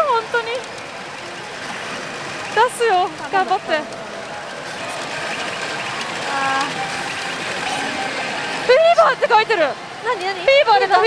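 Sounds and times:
pachinko machine sounds: 0.0s - 11.0s.

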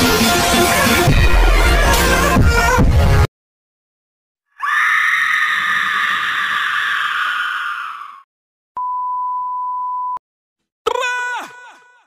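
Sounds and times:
microwave beep: 8.8s - 10.2s.

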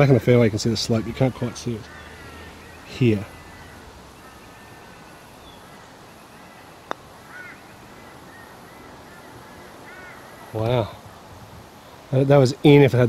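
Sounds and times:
putter striking golf ball: 6.9s - 7.1s.

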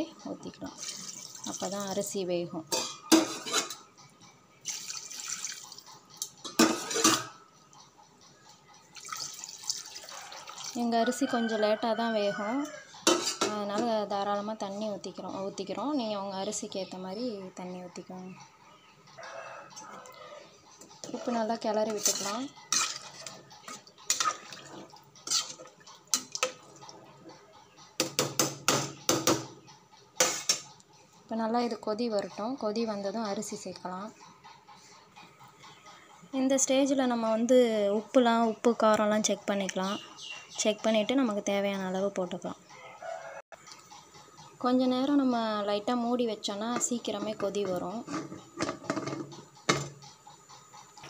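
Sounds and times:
water pouring and splashing: 0.8s - 1.8s, 4.7s - 5.9s, 9.0s - 10.8s, 24.1s - 25.5s
metal vessel clanking against pot: 2.7s - 3.8s, 6.2s - 7.4s, 13.0s - 13.9s, 21.0s - 26.7s, 46.7s - 50.1s.

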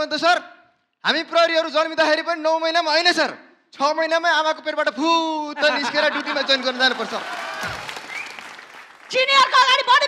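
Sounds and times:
audience applauding: 5.9s - 9.6s.

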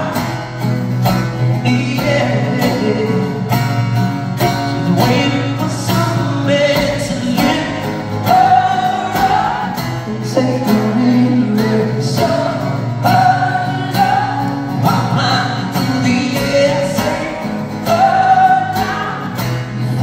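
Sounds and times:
man singing: 0.0s - 0.8s, 1.4s - 3.9s, 4.5s - 20.0s
strummed acoustic guitar: 0.0s - 20.0s.

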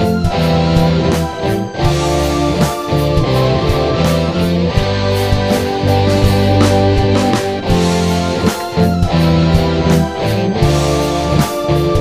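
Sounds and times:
progressive rock music: 0.0s - 12.0s.

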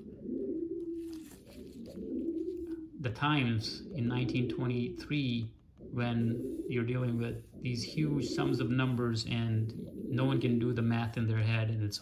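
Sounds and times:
dove cooing: 0.0s - 12.0s.

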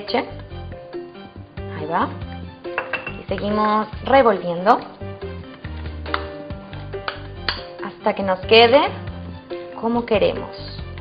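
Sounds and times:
background music with bass: 0.1s - 11.0s.

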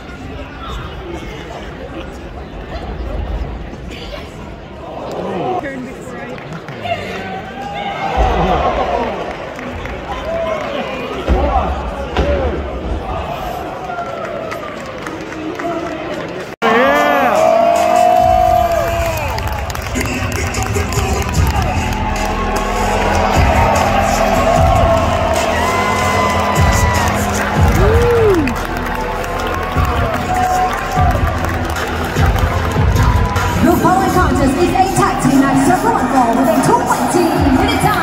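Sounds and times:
crowd cheering and shouting: 6.8s - 38.0s
entrance music with steady beat: 17.4s - 38.0s.

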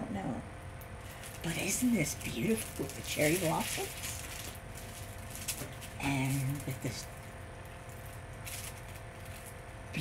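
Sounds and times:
steady low hum: 0.0s - 10.0s
plastic packaging crinkle: 0.9s - 10.0s.

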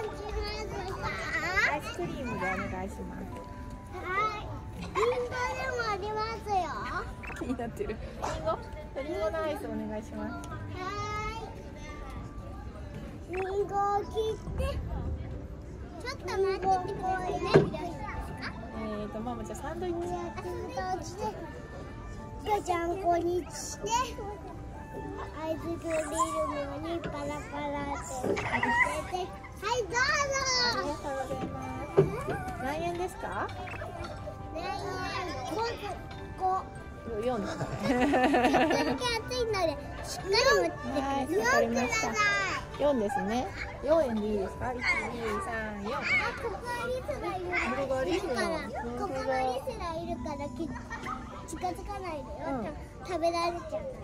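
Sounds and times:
children chattering and calling out: 0.0s - 54.0s.

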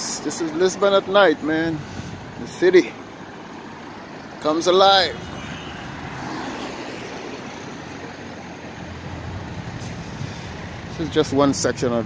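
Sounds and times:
road traffic hum: 0.0s - 12.0s.

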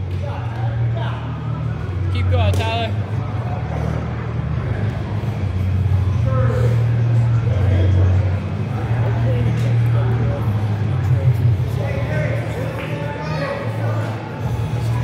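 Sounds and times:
scattered voices: 0.0s - 15.0s.

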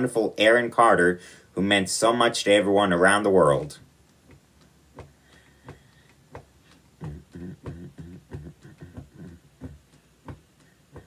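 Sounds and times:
percussive beat with low notes: 4.2s - 11.0s.

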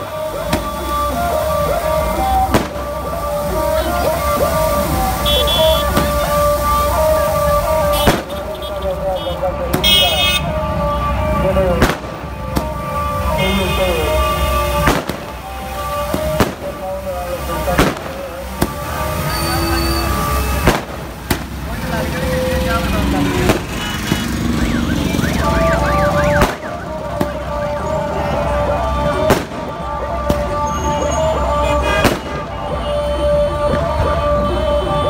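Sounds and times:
fountain fireworks hissing: 0.0s - 35.0s
firecracker bangs: 2.4s - 3.0s, 5.2s - 6.8s, 7.8s - 8.6s, 11.8s - 12.8s, 14.2s - 16.8s, 17.6s - 21.6s, 23.3s - 24.5s, 26.1s - 27.5s, 29.1s - 30.7s, 31.8s - 32.6s.

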